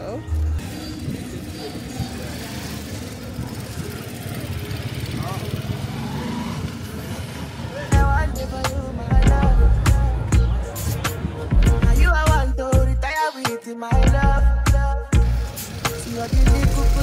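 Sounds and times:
motor vehicles passing: 0.0s - 12.0s, 15.2s - 17.0s
faint voices: 0.0s - 12.2s
steady traffic hum: 0.0s - 12.5s, 15.2s - 17.0s
loud music with strong bass: 7.9s - 17.0s.

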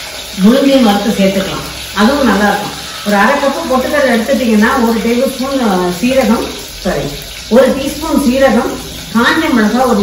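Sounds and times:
woman speaking: 0.4s - 10.0s.

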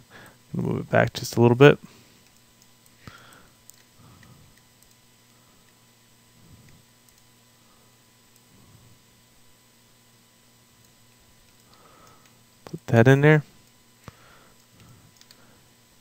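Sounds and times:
low steady hum: 0.0s - 16.0s
computer mouse clicks: 3.6s - 5.0s, 6.6s - 7.3s, 10.8s - 12.4s, 13.6s - 15.4s.

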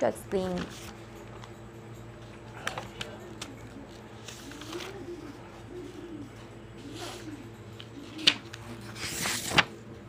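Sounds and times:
pigeon cooing: 2.6s - 9.8s.

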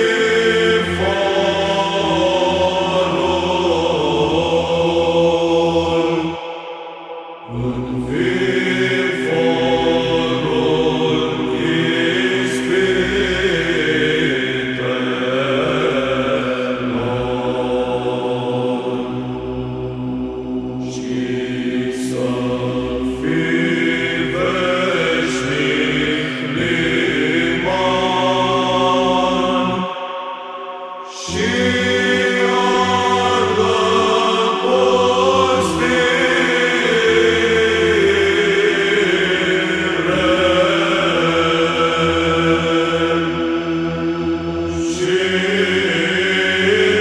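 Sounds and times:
voices chanting: 0.0s - 19.4s, 20.8s - 47.0s
low held drone: 0.0s - 47.0s.

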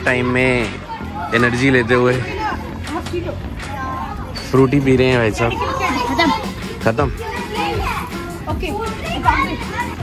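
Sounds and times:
children talking and calling out: 0.0s - 10.0s
music playing: 0.0s - 10.0s.

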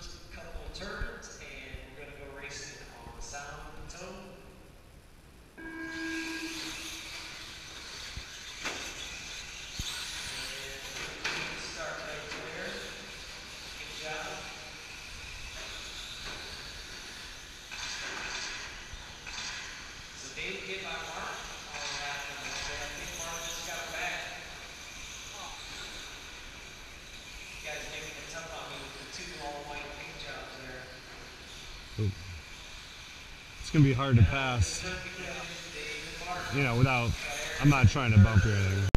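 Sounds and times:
rc trucks whining: 5.6s - 37.7s
indistinct talking: 32.0s - 32.4s, 33.6s - 34.9s, 36.4s - 38.9s.

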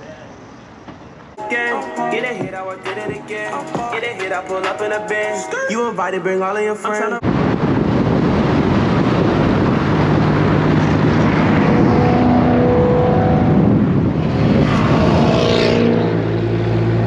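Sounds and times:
road noise: 0.0s - 17.0s
wind noise: 7.2s - 17.0s
car engine driving: 7.3s - 17.0s.

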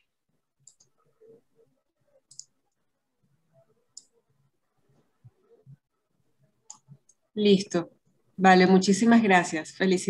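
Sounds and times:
faint clicks: 3.9s - 4.1s.

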